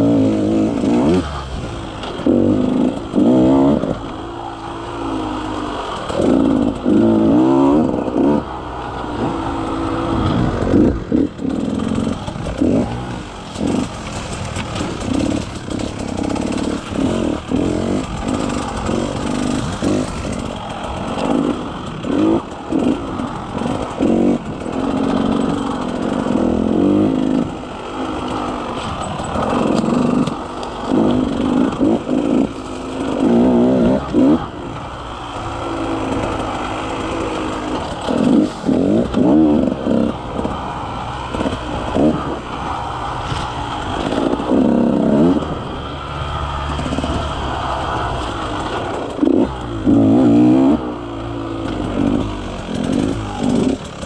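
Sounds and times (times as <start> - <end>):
dirt bike engine revving: 0.0 - 54.0.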